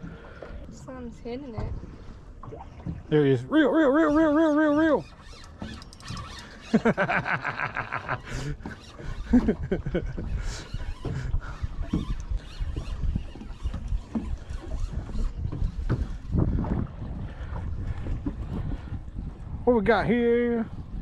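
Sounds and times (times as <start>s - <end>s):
water lapping against hull: 0.0s - 21.0s
wind buffeting microphone: 8.1s - 21.0s.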